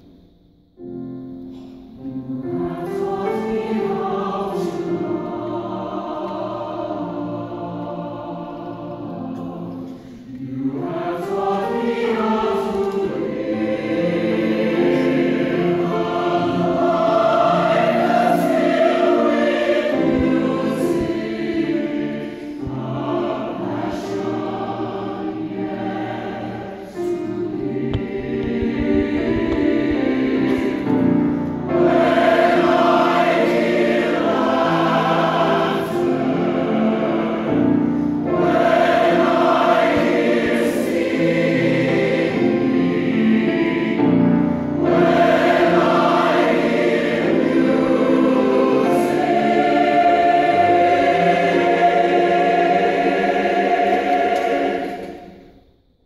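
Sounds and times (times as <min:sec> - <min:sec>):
mixed choir singing: 0:01.2 - 0:55.6.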